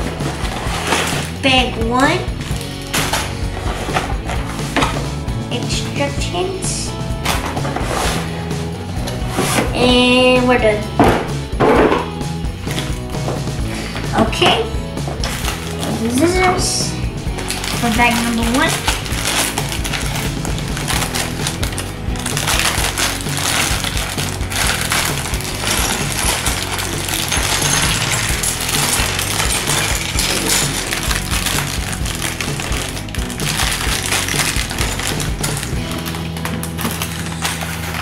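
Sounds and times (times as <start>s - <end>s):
plastic bag crinkling: 0.0s - 1.7s, 17.3s - 38.0s
background music: 0.0s - 38.0s
scissors cutting plastic: 0.3s - 1.4s, 17.4s - 38.0s
plastic bricks rattling: 17.4s - 38.0s.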